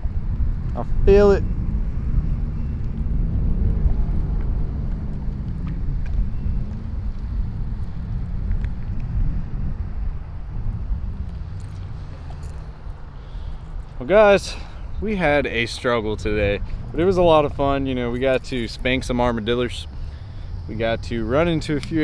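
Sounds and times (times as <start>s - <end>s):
outdoor low rumble: 0.0s - 22.0s
faint ticks: 2.7s - 9.1s.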